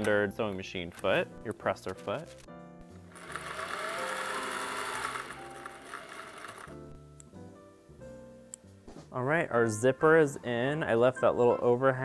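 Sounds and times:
electric sewing machine running: 0:03.1 - 0:06.9.

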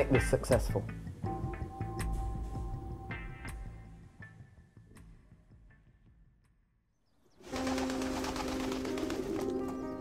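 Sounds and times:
pigeons flapping wings: 0:07.4 - 0:09.8.

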